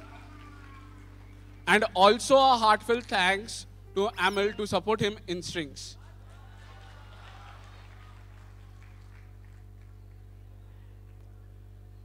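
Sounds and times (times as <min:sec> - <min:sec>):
sound system electrical hum: 0:00.0 - 0:12.0.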